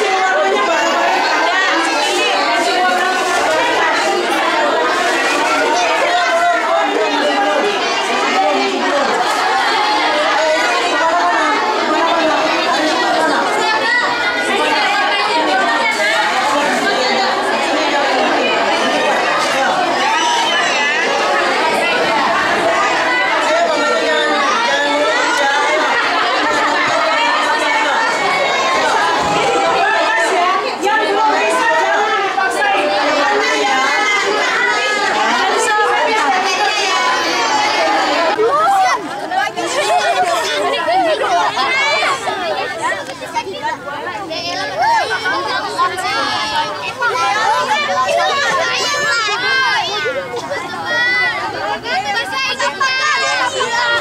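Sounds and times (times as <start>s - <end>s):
children chattering: 0.0s - 54.0s.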